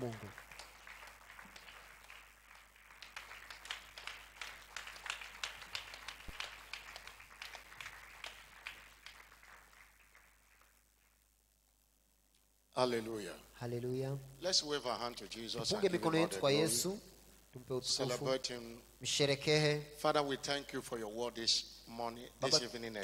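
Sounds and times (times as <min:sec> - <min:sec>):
congregation clapping: 0:00.0 - 0:11.3.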